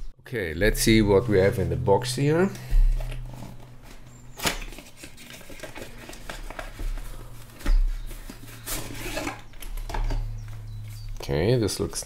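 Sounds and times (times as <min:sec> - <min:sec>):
steady low hum: 0:00.0 - 0:05.1, 0:06.6 - 0:12.0.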